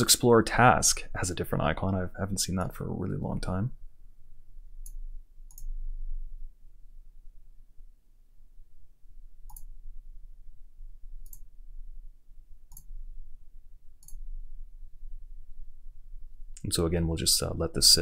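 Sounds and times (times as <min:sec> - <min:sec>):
faint low hum: 0:00.0 - 0:18.0
computer mouse clicking: 0:04.8 - 0:05.8, 0:09.5 - 0:09.7, 0:11.2 - 0:11.5, 0:12.7 - 0:12.9, 0:14.0 - 0:14.2.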